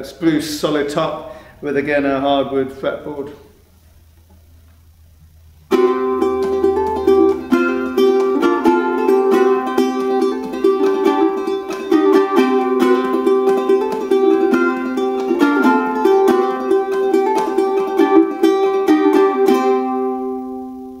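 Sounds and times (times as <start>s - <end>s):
ukulele strumming: 5.7s - 21.0s.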